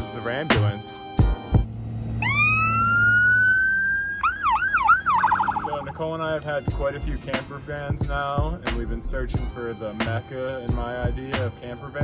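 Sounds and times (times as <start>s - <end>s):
emergency siren wailing: 1.6s - 6.3s.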